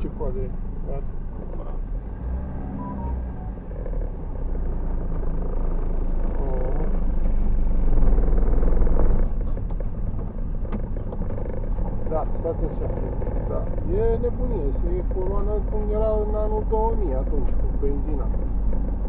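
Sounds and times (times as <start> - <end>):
car engine: 0.0 - 19.0.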